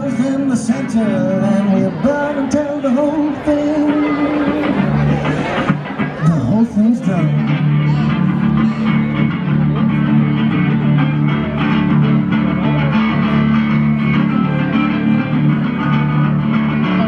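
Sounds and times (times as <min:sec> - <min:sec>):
electric guitar playing blues: 0:00.0 - 0:17.0.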